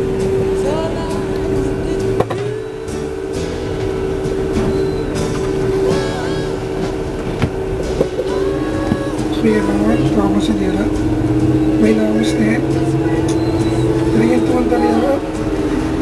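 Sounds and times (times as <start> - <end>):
coach engine hum from inside: 0.0 - 16.0
person talking: 8.4 - 11.0, 14.0 - 15.4.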